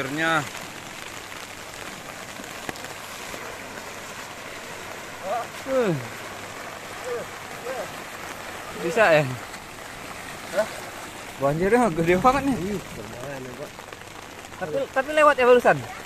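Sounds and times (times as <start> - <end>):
floodwater rushing: 0.0 - 16.0.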